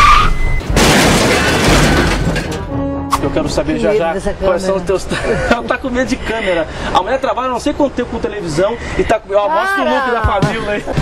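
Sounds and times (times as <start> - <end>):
loud crash smash: 0.6 - 2.7.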